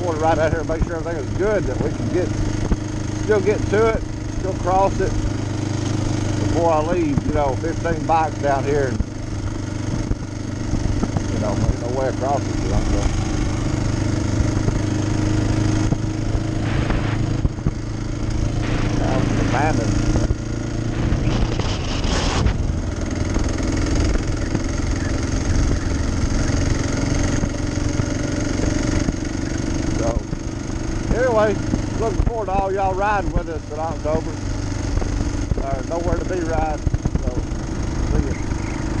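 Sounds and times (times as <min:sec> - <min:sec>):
motorcycle engine running: 0:00.0 - 0:39.0
wind rumbling on microphone: 0:08.9 - 0:27.8.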